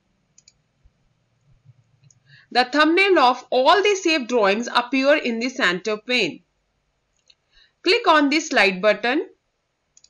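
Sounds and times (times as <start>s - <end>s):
computer mouse click: 0.4s - 0.6s.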